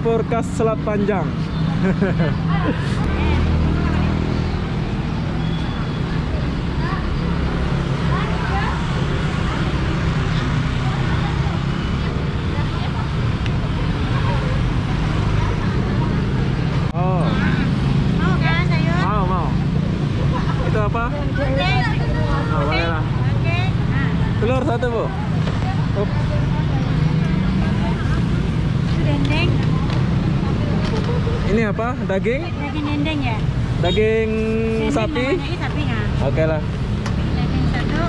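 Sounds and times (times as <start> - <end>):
motorbike engines humming: 0.0 - 38.0
people talking: 8.0 - 17.6.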